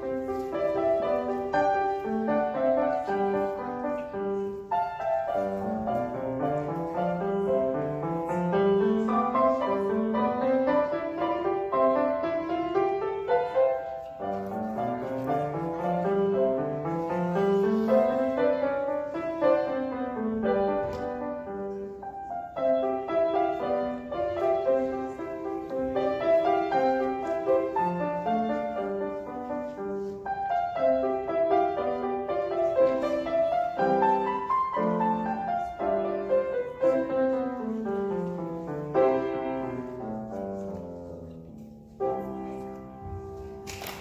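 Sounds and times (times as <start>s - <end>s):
solo piano classical piece: 0.0s - 44.0s.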